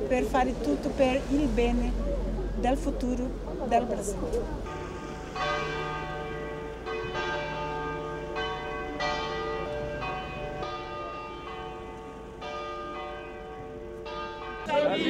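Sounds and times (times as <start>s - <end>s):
church bells ringing: 4.7s - 15.0s.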